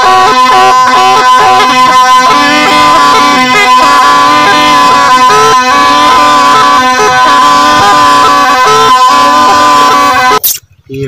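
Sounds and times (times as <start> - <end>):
reedy double-reed pipe melody: 0.0 - 10.4.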